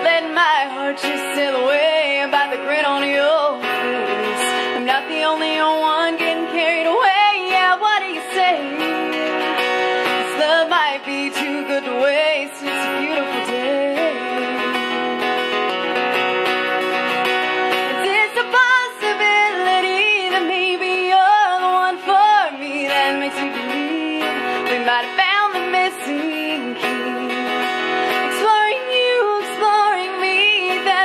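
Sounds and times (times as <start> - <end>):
acoustic guitar strumming: 0.0 - 31.0
woman singing: 0.0 - 31.0.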